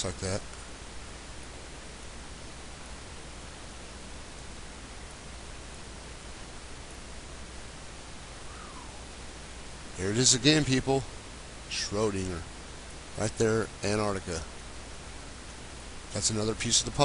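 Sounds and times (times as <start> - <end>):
low hum: 0.0 - 17.0
steady background hiss: 0.0 - 17.0.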